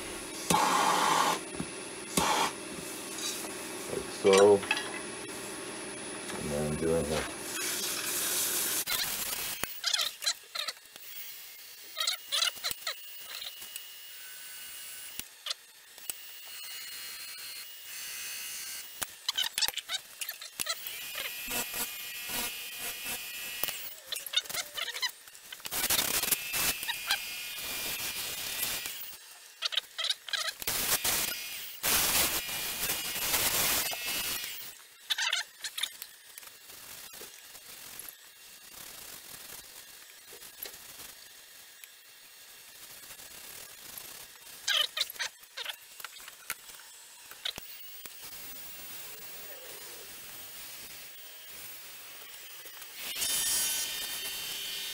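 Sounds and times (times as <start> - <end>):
sanding pad on spinning wood bowl: 0.0 - 4.6.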